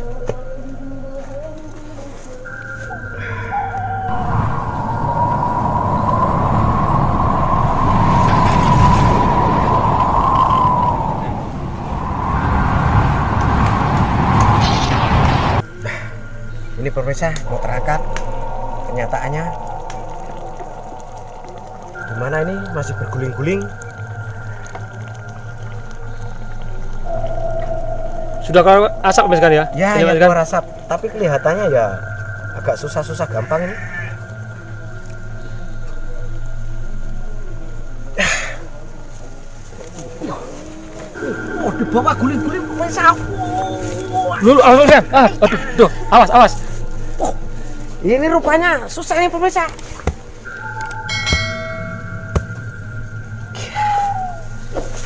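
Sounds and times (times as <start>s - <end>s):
low droning background music: 0.0s - 55.0s
held high note: 40.5s - 46.0s, 50.4s - 55.0s
bell chime ringing: 50.5s - 54.8s.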